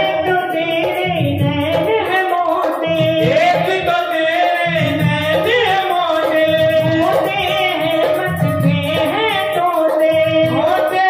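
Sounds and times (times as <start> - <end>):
amplified instrumental accompaniment: 0.0 - 11.0
woman singing into a microphone: 0.0 - 11.0.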